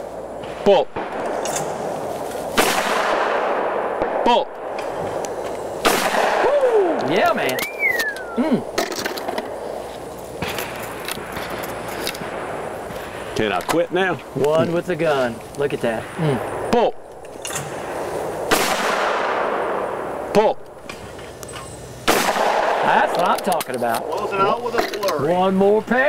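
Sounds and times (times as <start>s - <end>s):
shotgun shot: 2.5s - 5.0s, 5.8s - 6.6s, 17.5s - 20.2s, 22.0s - 23.4s
person calling out: 8.2s - 8.7s.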